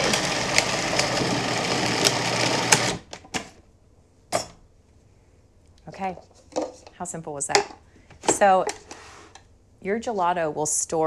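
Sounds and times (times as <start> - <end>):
food processor motor running: 0.0 - 3.1.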